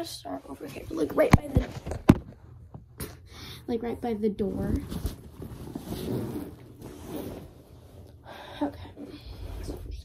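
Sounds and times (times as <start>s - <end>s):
cloth rustling: 4.5s - 8.2s
zipper being pulled: 4.8s - 8.1s.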